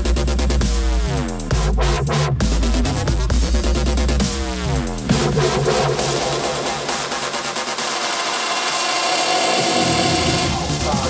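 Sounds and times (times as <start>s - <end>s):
deep bass: 0.0s - 8.2s
electronic dance music: 0.0s - 11.0s
rushing noise sweep: 4.9s - 10.4s.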